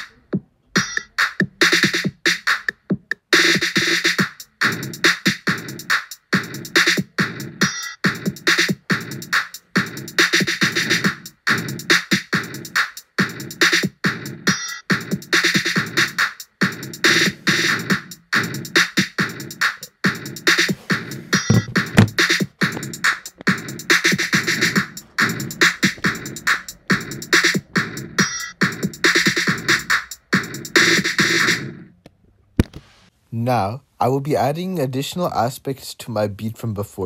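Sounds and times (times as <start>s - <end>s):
trap drum beat: 0.8s - 31.6s
hi-hats: 15.3s - 31.4s.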